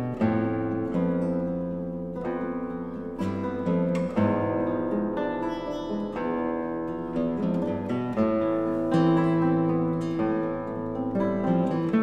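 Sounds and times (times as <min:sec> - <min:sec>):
classical guitars playing chords: 0:00.0 - 0:12.0.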